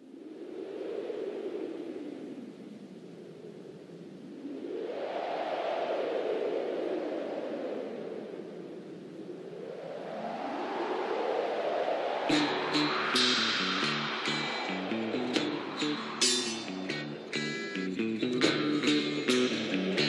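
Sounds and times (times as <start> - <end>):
rushing whooshing noise: 9.3 - 20.0.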